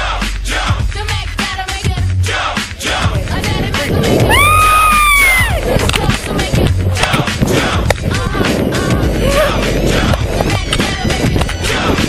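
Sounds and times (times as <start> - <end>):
hip hop music: 0.0 - 12.0
wind buffeting camera: 2.7 - 12.0
woman screaming: 4.3 - 5.6.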